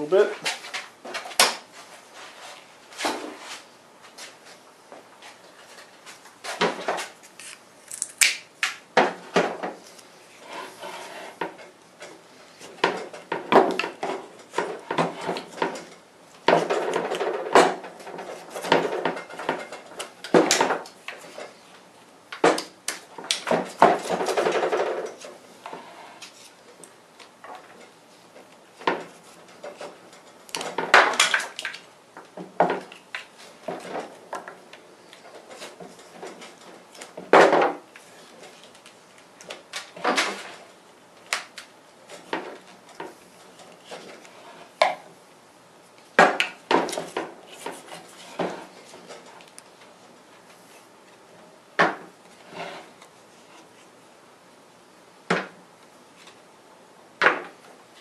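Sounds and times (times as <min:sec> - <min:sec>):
scraping and rubbing: 0:10.3 - 0:11.4, 0:52.4 - 0:53.9.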